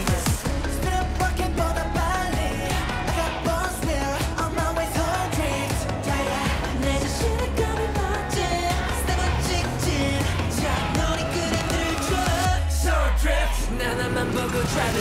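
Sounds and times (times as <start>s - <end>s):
dance pop track: 0.0s - 15.0s
man singing: 0.0s - 15.0s.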